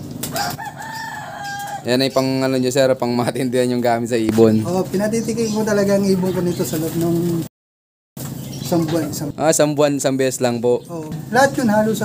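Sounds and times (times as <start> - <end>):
rooster crowing: 0.3 - 2.0, 5.9 - 6.6.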